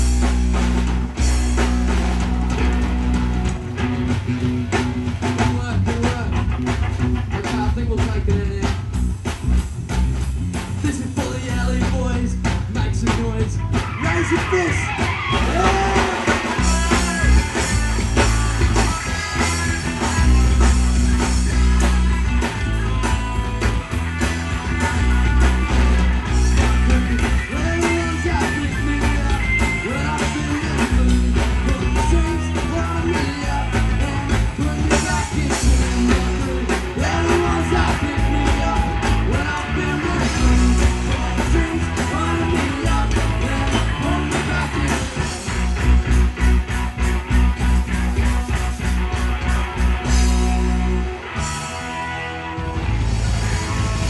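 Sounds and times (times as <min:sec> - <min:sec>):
bass guitar: 0:00.0 - 0:54.0
drum kit: 0:00.0 - 0:54.0
guitars: 0:00.0 - 0:54.0
man singing: 0:05.2 - 0:06.7, 0:07.3 - 0:09.0, 0:10.7 - 0:23.5, 0:24.6 - 0:45.6.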